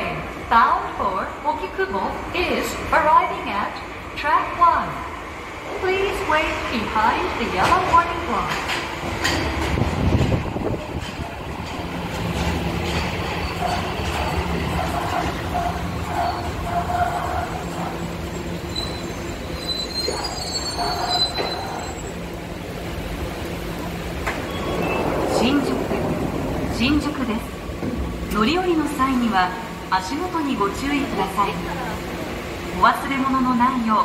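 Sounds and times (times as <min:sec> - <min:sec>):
subway train braking: 0:00.0 - 0:34.0
high brake squeal: 0:18.3 - 0:22.2, 0:24.4 - 0:25.2.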